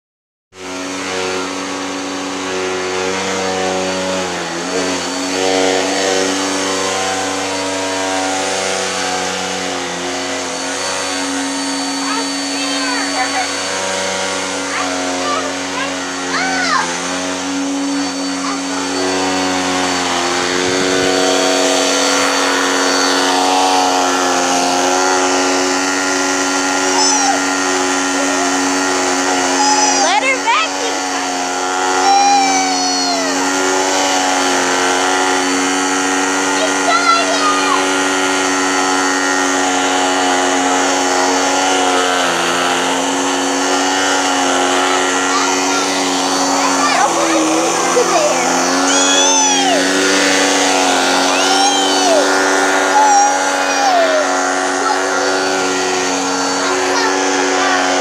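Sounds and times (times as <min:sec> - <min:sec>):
vacuum cleaner running: 0:00.5 - 0:58.0.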